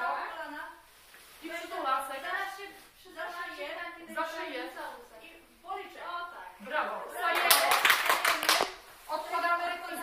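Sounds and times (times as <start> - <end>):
hands clapping in applause: 7.3 - 8.8.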